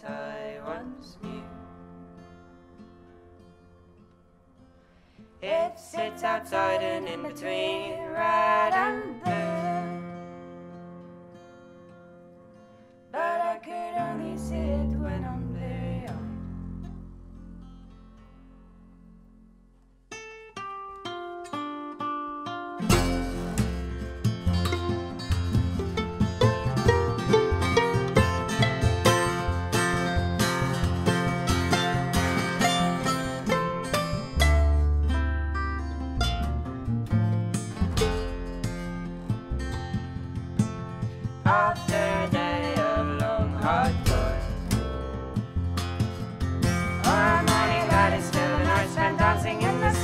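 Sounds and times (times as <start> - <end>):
acoustic guitar: 0.0 - 50.0
upright double bass: 14.2 - 19.8, 22.9 - 50.0
plucked violin melody: 22.9 - 40.2, 47.0 - 50.0.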